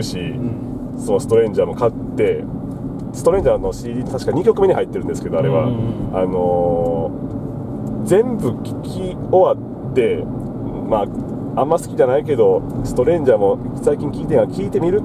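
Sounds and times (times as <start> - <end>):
people talking: 0.0 - 2.4, 3.2 - 7.1, 8.1 - 15.0
car cabin road noise: 0.0 - 15.0.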